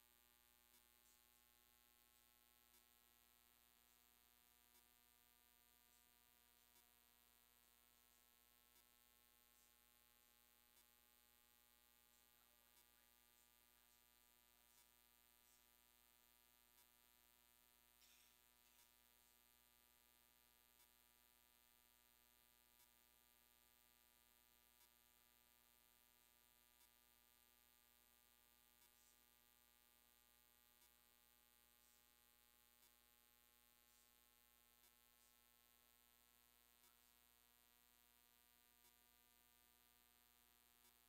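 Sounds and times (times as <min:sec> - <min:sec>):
faint electrical hum: 0:00.0 - 0:41.0.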